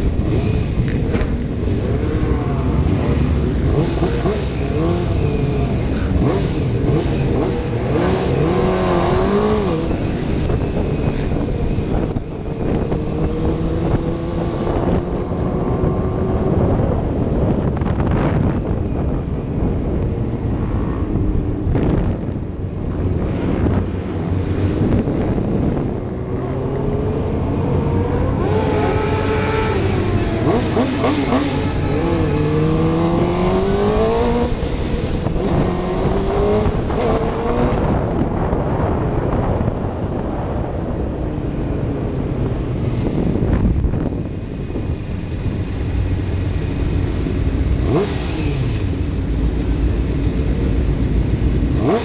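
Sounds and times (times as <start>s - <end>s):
motorcycle engines revving: 0.0s - 52.0s
wind noise on microphone: 0.0s - 52.0s.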